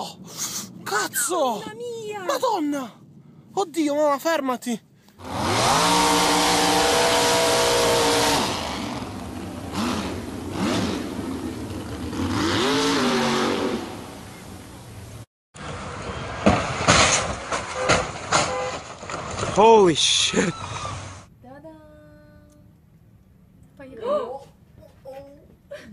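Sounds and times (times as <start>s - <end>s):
car engine revving: 5.2s - 14.8s
sharp knocks and bangs: 16.3s - 19.6s.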